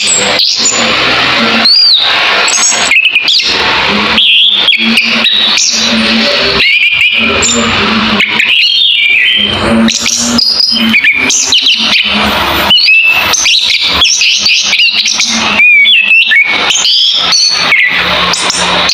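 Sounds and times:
thrush singing: 0.0 - 18.9.

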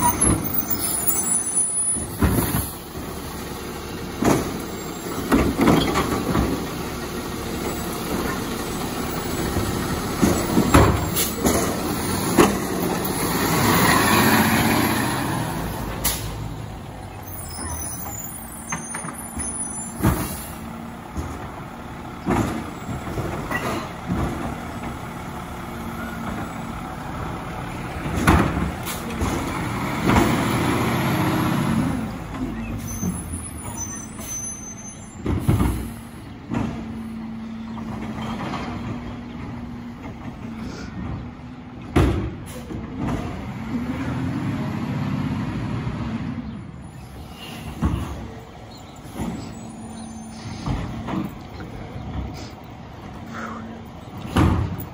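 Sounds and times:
garbage truck diesel engine revving: 0.0 - 18.7, 19.3 - 34.3, 35.3 - 54.9.

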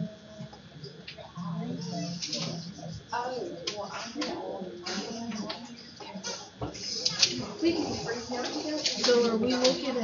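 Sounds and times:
quiet indistinct voices: 0.0 - 10.0.

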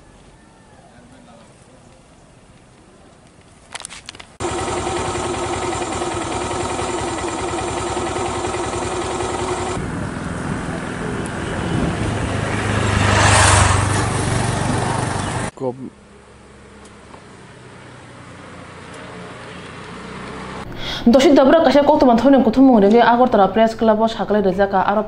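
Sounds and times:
engine hum: 4.2 - 21.0
vehicle passing close by: 9.7 - 15.5, 16.2 - 20.7.

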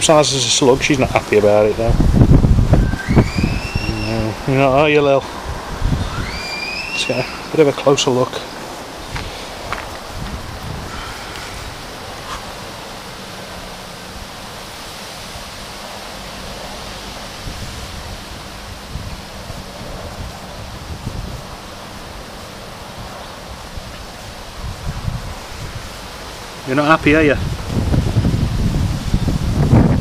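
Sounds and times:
outdoor background hiss: 0.0 - 30.0
wind buffeting microphone: 0.0 - 30.0.

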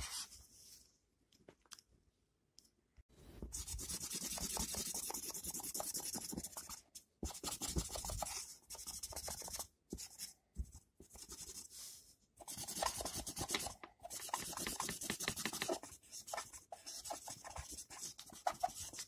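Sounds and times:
pencil shading on paper: 3.6 - 10.3, 11.1 - 19.0.

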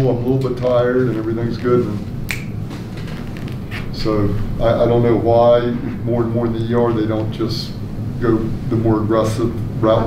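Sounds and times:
low room rumble: 0.0 - 10.0
sharp click: 2.3 - 2.6.

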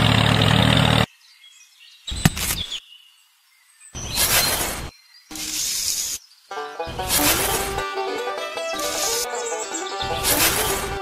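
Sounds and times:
sand scraped with metal shovel: 4.0 - 6.2, 6.9 - 7.8, 8.8 - 9.3, 10.2 - 11.0
music: 6.5 - 11.0
sand poured into metal bowl: 7.1 - 7.8.

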